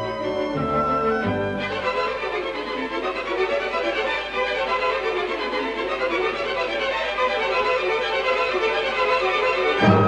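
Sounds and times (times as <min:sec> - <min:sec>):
orchestral music with violins: 0:00.0 - 0:10.0.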